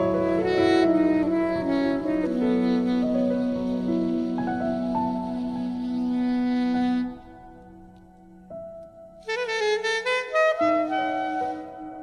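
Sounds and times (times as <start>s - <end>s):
calm instrumental music: 0.0s - 12.0s.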